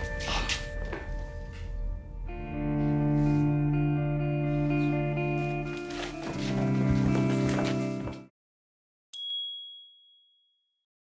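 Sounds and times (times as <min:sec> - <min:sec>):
bright high chime: 0:09.2 - 0:10.7.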